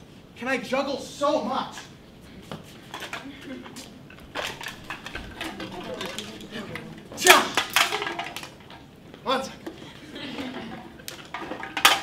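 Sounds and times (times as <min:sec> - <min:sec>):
props clinking and clattering: 0:02.9 - 0:08.9, 0:10.4 - 0:12.0.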